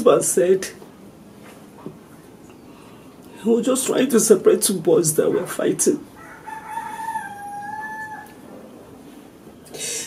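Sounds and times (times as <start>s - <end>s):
rooster crowing: 6.1s - 8.5s.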